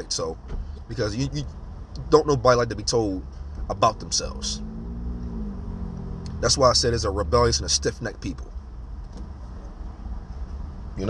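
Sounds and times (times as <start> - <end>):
vehicle rumble inside car: 0.0 - 11.0.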